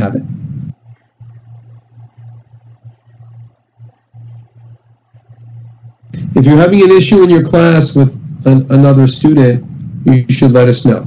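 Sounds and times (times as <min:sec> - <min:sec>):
faint hiss: 0:00.0 - 0:11.0
low hum: 0:00.0 - 0:11.0.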